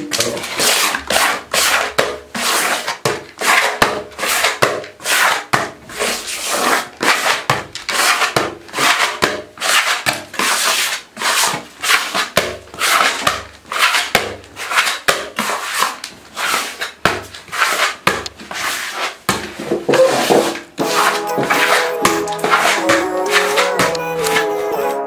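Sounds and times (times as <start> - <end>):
sponge rubbing on wall: 0.4 - 24.8.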